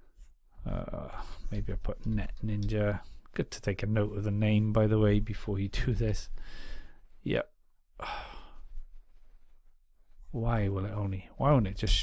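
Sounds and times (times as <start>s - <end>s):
man sighing: 8.0s - 8.6s.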